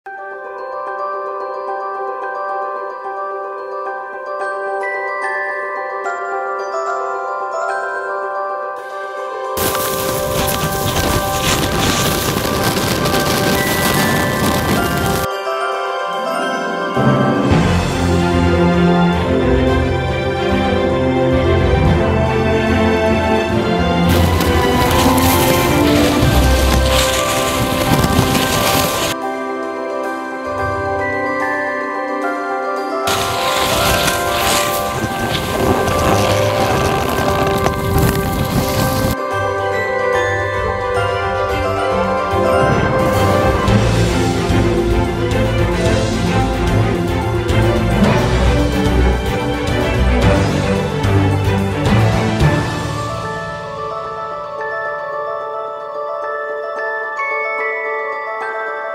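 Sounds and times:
background music with sustained tones: 0.1s - 12.4s, 13.8s - 58.9s
skis rushing through powder snow: 9.6s - 15.3s, 24.1s - 29.2s, 33.1s - 39.2s
wind on a camera: 9.6s - 15.3s, 33.1s - 39.2s.

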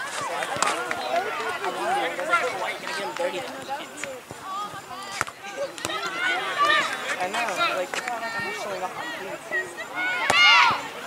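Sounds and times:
people calling out: 0.0s - 11.0s.

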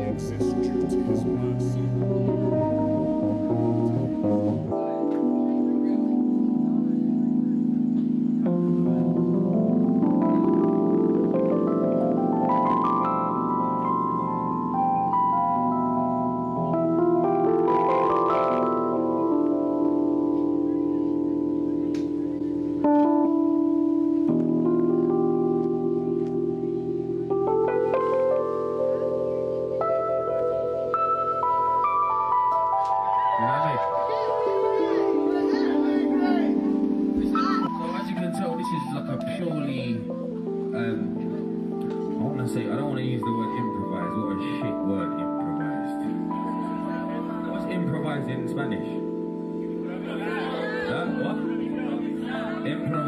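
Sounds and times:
low bass line: 0.0s - 5.1s
electric organ chords: 0.0s - 53.0s
high keyboard notes: 0.0s - 53.0s.

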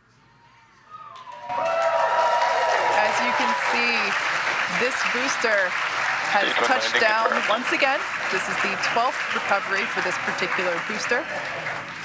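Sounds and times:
shouts and whistles: 0.8s - 3.8s
crowd cheering and whooping: 0.9s - 11.7s
people clapping: 1.0s - 12.0s.

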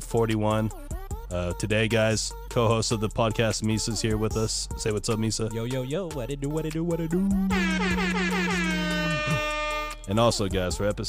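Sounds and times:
air horn blast: 7.5s - 10.1s.

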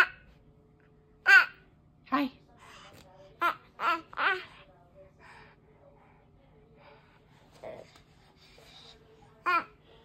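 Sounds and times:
baby breathing softly: 4.5s - 10.0s.

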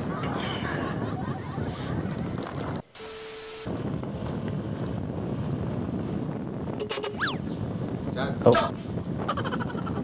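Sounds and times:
wind rumble on microphone: 0.0s - 2.9s, 3.6s - 10.0s
static hiss: 2.9s - 3.7s
steady beep: 6.8s - 7.5s.

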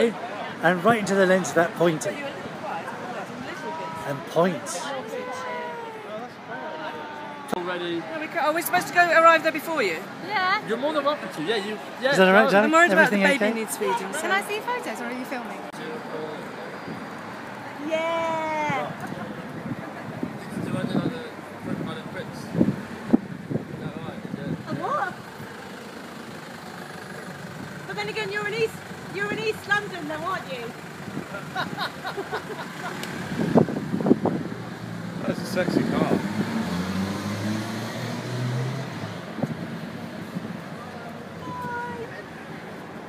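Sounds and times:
street traffic noise: 0.0s - 43.0s
car engine idling: 24.7s - 33.0s.

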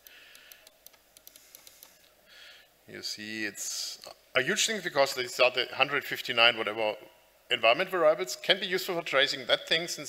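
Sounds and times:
laptop keys typing: 0.0s - 2.1s.

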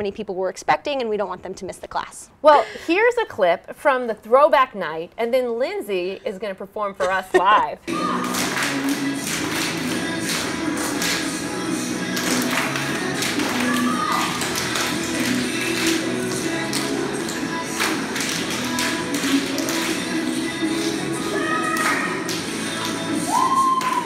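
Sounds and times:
music with steady beat: 7.9s - 24.0s.

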